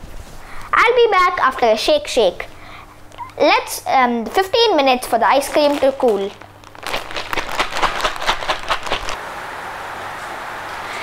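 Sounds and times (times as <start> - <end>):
ice rattling in plastic bag: 5.0 - 9.2.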